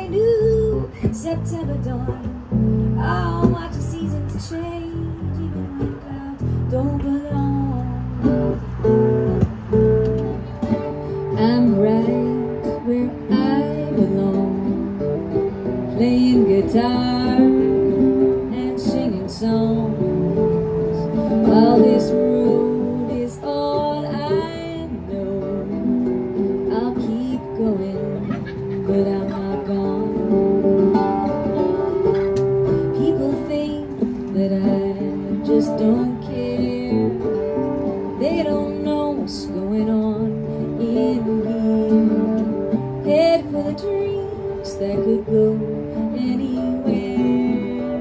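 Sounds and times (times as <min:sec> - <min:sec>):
electric bass playing: 0:00.0 - 0:23.6
acoustic guitar strumming: 0:00.0 - 0:48.0.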